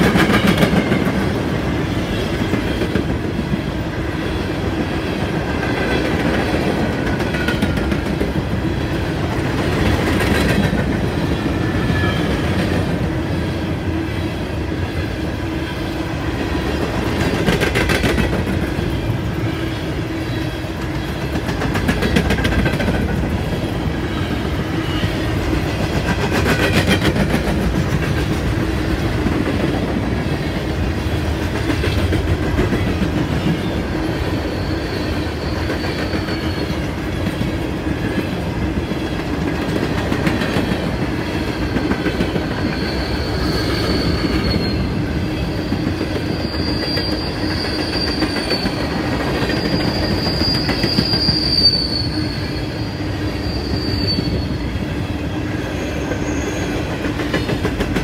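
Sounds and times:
train wheels rumbling on rail: 0:00.0 - 0:58.0
high wheel squeal: 0:11.2 - 0:12.6, 0:33.5 - 0:37.2, 0:40.6 - 0:56.9.

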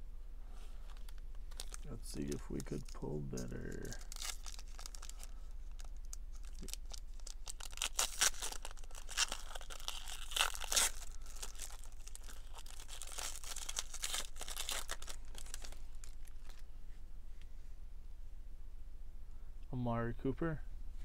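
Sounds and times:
foil wrapper tearing and crinkling: 0:00.9 - 0:16.6.

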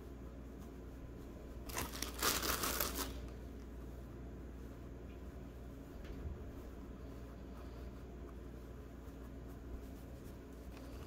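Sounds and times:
plastic bag crinkling: 0:01.6 - 0:03.4.

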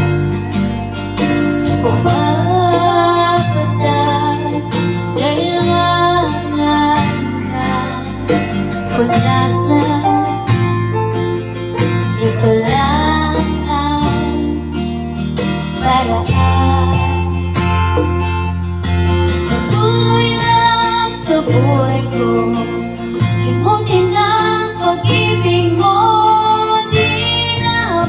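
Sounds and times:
backing music with guitar and bass: 0:00.0 - 0:28.0
woman singing into microphone: 0:01.8 - 0:10.9, 0:12.0 - 0:14.9, 0:15.6 - 0:17.6, 0:19.3 - 0:28.0.

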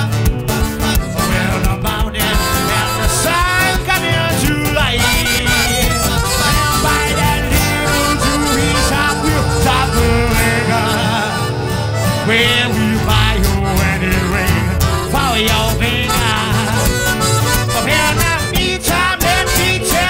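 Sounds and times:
acoustic guitar: 0:00.0 - 0:20.0
double bass: 0:00.0 - 0:20.0
wavering lead melody: 0:00.9 - 0:20.0.

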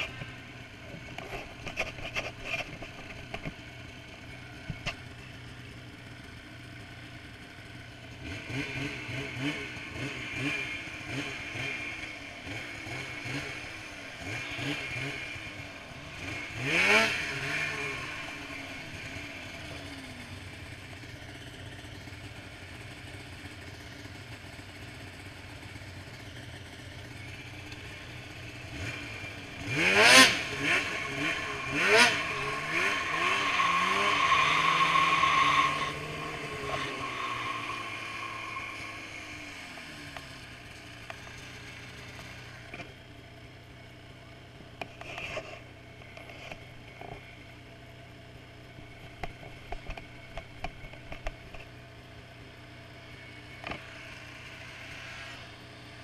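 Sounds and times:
engine high drone: 0:00.0 - 0:44.2
snowmobile engines revving past: 0:28.6 - 0:42.6.

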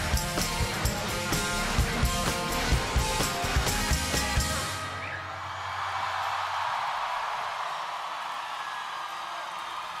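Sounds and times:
crowd cheering and applauding: 0:00.1 - 0:10.0.

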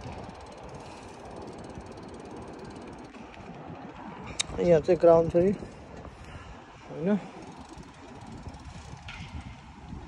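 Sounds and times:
low road rumble: 0:00.0 - 0:10.0
wind rush on microphone: 0:00.0 - 0:10.0.

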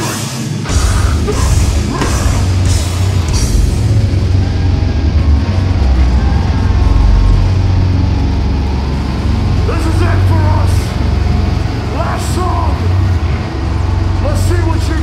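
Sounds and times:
amplified guitars and bass rumble: 0:00.0 - 0:15.0.

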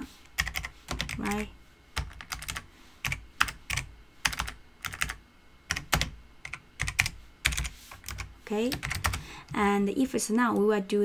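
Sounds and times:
typing on keyboard: 0:00.4 - 0:09.2.

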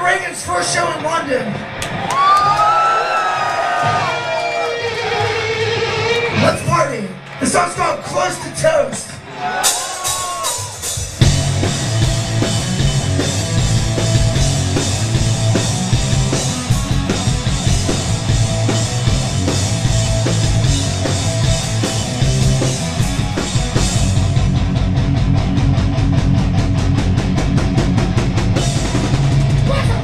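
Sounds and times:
metal band playing: 0:03.4 - 0:30.0.

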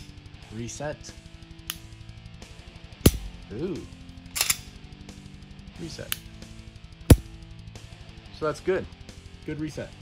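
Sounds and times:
pistol trigger clicks: 0:01.6 - 0:01.9.

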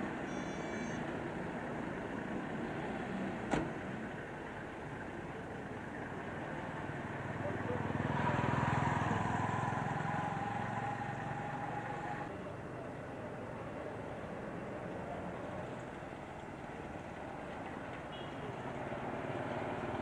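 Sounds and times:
vehicle passing by: 0:06.6 - 0:12.3, 0:18.6 - 0:20.0.

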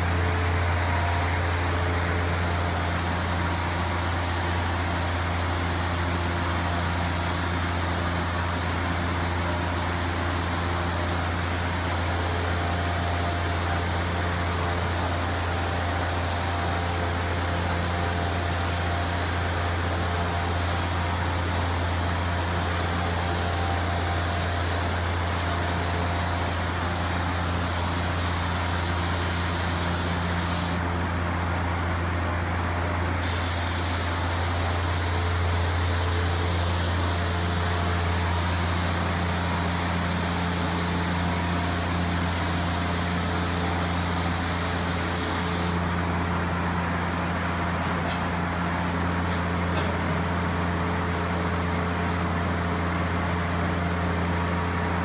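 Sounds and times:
spray gun hissing: 0:00.0 - 0:30.8, 0:33.2 - 0:46.6
steady low hum: 0:00.0 - 0:55.0.

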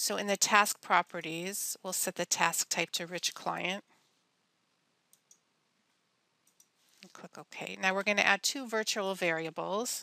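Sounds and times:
computer mouse clicks: 0:05.1 - 0:05.4, 0:06.4 - 0:06.7.

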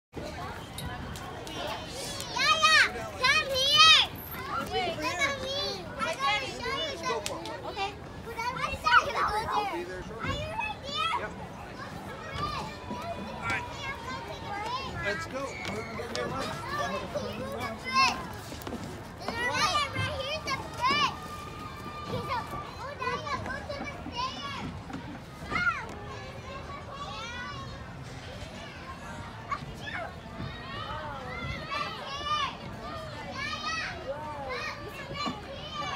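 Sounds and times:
outdoor background noise: 0:00.1 - 0:35.9
child chatter: 0:00.2 - 0:35.9
children calling loudly: 0:00.3 - 0:18.6, 0:19.2 - 0:35.9.

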